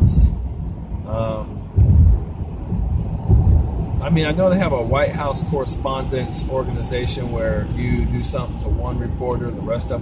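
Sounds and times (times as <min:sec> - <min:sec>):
car rumble from inside cabin: 0:00.0 - 0:10.0.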